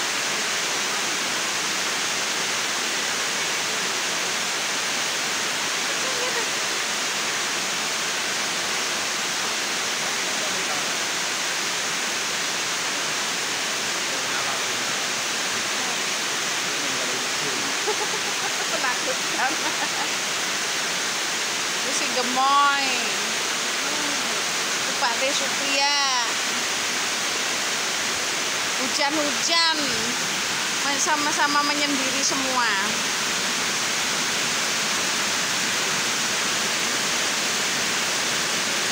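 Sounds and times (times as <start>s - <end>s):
rain falling steadily: 0.0s - 38.9s.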